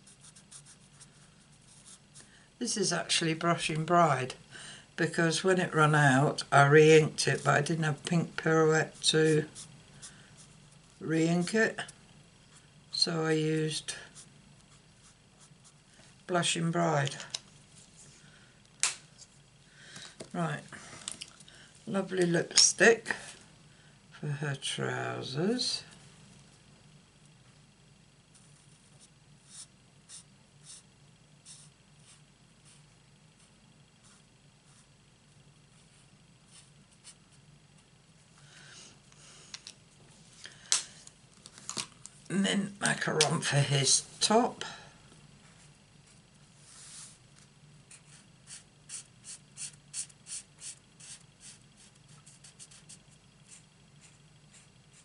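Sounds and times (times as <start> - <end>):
marker scratching on card: 29.4 - 32.8, 47.9 - 55.0.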